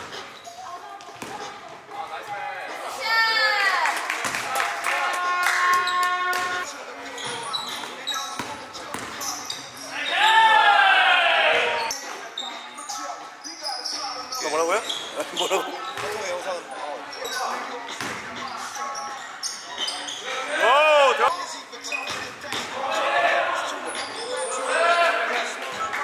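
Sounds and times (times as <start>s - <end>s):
sneakers squeaking: 0.0s - 1.9s, 5.8s - 10.3s, 11.6s - 22.8s, 23.6s - 24.8s
players shouting: 9.9s - 11.9s, 20.4s - 21.3s.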